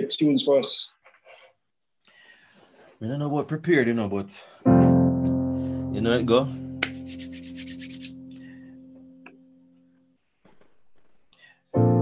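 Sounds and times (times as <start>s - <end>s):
electric piano note: 4.7s - 6.8s
fast scratchy rubbing: 6.8s - 8.3s.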